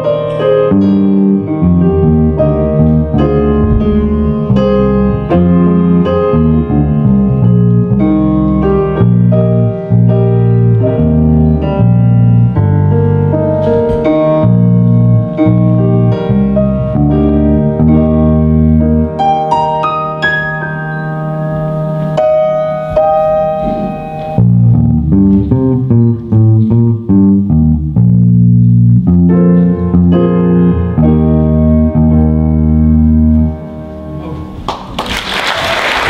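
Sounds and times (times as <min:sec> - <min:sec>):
electric bass guitar melody: 0:00.0 - 0:34.7
piano accompaniment: 0:00.0 - 0:36.0.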